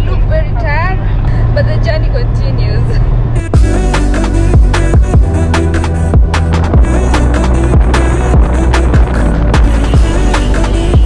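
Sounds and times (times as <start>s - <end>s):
woman speaking: 0.0s - 3.0s
car road and engine rumble: 0.0s - 11.0s.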